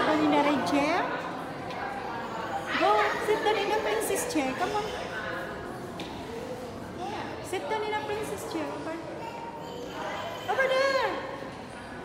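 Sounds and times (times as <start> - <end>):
murmur in a tiled room: 0.0 - 12.0.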